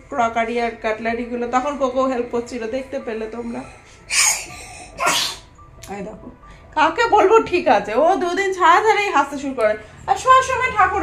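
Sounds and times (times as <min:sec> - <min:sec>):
woman speaking: 0:00.0 - 0:03.8, 0:05.8 - 0:11.0.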